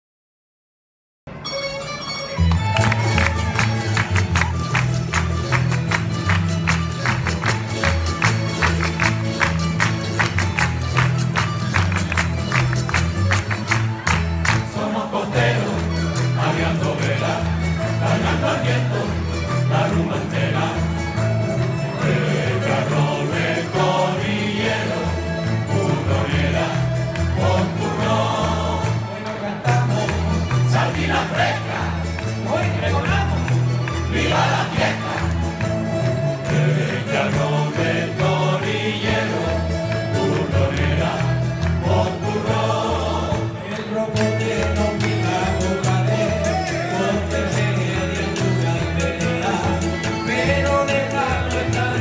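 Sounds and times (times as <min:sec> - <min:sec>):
acoustic guitars and lutes playing: 0:01.3 - 0:52.0
string ensemble strumming: 0:01.3 - 0:52.0
bass line: 0:02.5 - 0:29.1, 0:29.7 - 0:52.0
choir singing: 0:14.5 - 0:33.4, 0:34.0 - 0:52.0.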